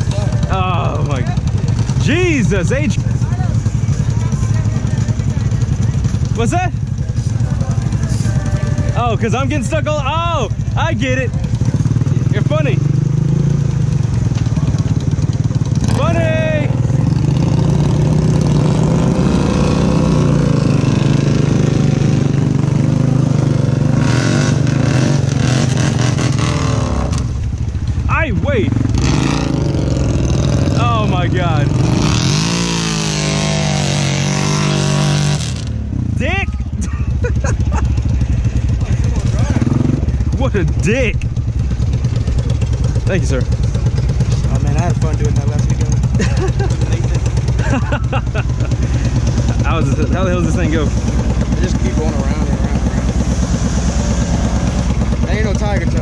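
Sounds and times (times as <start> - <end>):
atv engine revving under load: 0.0 - 56.0.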